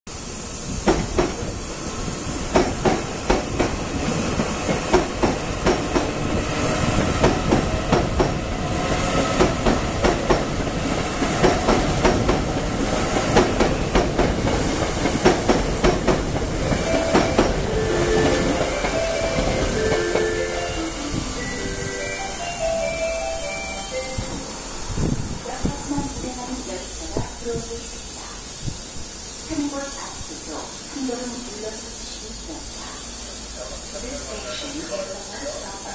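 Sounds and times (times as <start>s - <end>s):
electric train rumbling past: 0.1s - 35.9s
short pitched notes: 16.7s - 24.5s.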